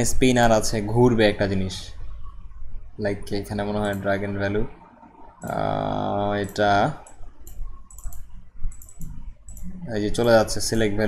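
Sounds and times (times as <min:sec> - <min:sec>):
man speaking: 0:00.0 - 0:02.0, 0:03.0 - 0:04.7, 0:05.4 - 0:07.0, 0:09.8 - 0:11.0
computer mouse clicks: 0:03.8 - 0:04.1, 0:06.4 - 0:10.5.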